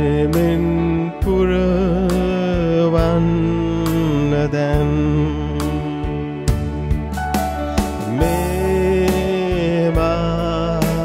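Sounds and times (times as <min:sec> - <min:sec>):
man singing: 0:00.0 - 0:06.8, 0:08.1 - 0:11.0
electronic keyboard chords: 0:00.0 - 0:11.0
soft percussive beat: 0:06.5 - 0:09.3.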